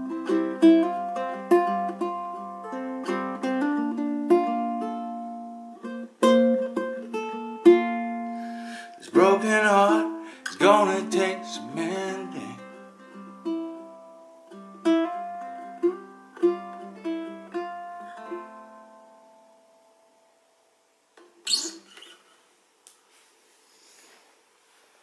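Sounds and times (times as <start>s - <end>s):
ukulele picked notes and chord: 0.0s - 20.3s
rustling noise: 21.5s - 25.0s.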